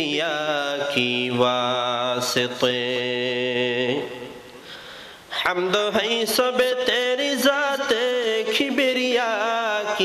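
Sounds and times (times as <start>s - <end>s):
man chanting into a microphone: 0.0s - 4.6s, 5.3s - 10.0s.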